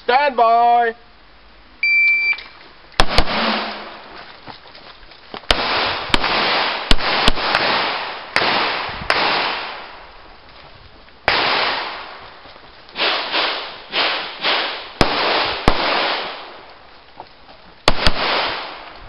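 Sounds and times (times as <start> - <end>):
shot timer beep: 1.8 - 2.5
pistol shots echoing: 3.0 - 4.0, 5.5 - 10.0, 11.3 - 12.3, 13.0 - 16.6, 17.9 - 18.9.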